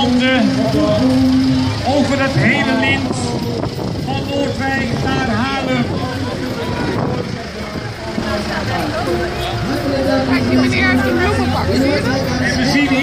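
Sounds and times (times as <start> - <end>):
people talking: 0.0 - 13.0
tractor engine running: 0.0 - 13.0.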